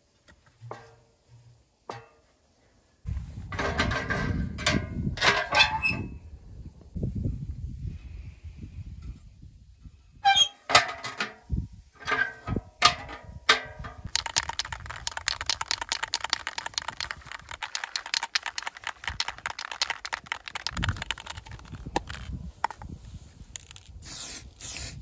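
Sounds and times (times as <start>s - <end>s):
spray can ball rattling: 14.1s - 22.8s, 23.6s - 25.0s.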